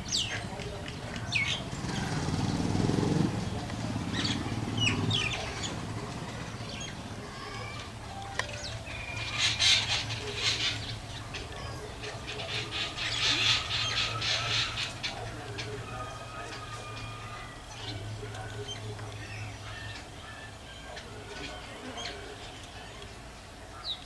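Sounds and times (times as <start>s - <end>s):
birds chattering: 0.0s - 24.0s.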